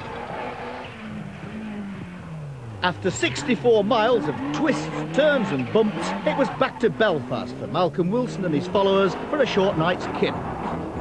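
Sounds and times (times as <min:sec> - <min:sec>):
rally car engine running: 0:00.0 - 0:11.0.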